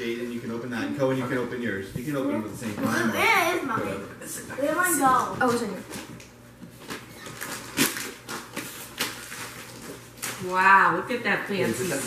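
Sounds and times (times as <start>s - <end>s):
gift wrap crinkling and rustling: 6.8s - 10.8s, 11.6s - 12.0s.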